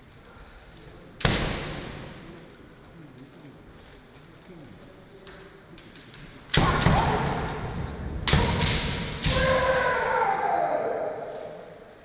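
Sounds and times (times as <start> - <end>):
fencers shouting: 6.6 - 7.9, 8.5 - 12.0
bamboo sword strikes cracking: 8.3 - 9.9.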